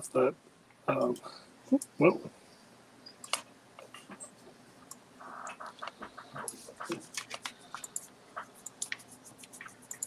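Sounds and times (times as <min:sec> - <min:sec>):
keyboard and mouse clicks: 0:03.2 - 0:04.2, 0:04.9 - 0:10.0
person speaking: 0:05.5 - 0:09.9.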